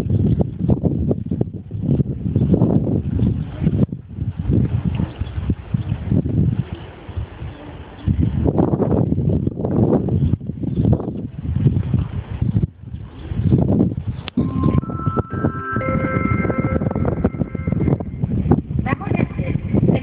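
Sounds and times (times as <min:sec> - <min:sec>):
wind rumbling on microphone: 0:00.0 - 0:20.0
loudspeaker chime: 0:14.4 - 0:18.4.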